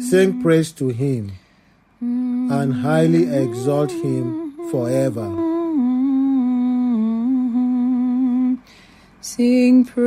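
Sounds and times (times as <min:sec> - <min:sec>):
man humming a chant: 0:00.0 - 0:01.4, 0:02.0 - 0:06.4.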